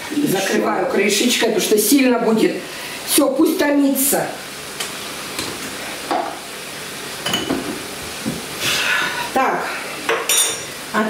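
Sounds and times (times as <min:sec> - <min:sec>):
food sizzling in a frying pan: 0:00.0 - 0:11.0
kitchenware knocks: 0:07.2 - 0:08.4.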